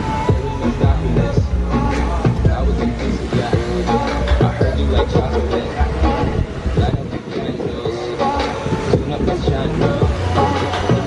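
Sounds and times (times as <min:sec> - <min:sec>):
fairground ride mechanical rumble: 0:00.0 - 0:11.0.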